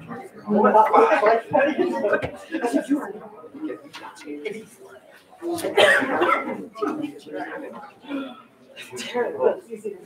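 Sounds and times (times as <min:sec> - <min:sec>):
people talking in a room: 0:00.0 - 0:10.0.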